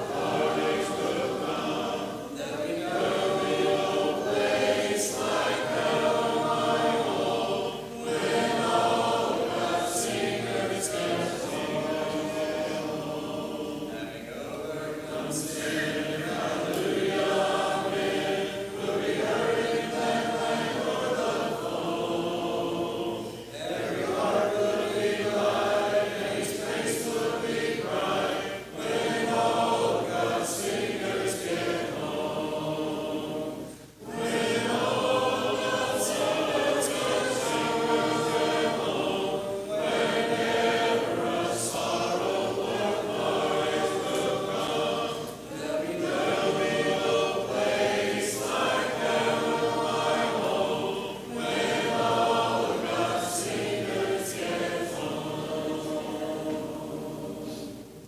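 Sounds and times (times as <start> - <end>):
congregation singing a hymn: 0.0 - 58.0.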